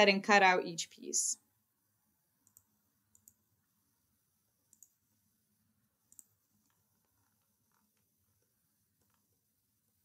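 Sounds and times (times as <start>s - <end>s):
faint high-pitched clicks: 2.4s - 3.4s, 4.7s - 5.0s, 6.0s - 9.2s.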